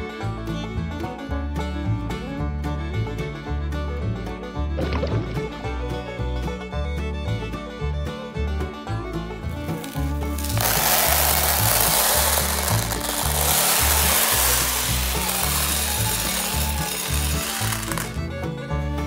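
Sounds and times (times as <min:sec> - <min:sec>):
background music: 0:00.0 - 0:19.0
corn kernels rattling in plastic bin: 0:09.7 - 0:18.2.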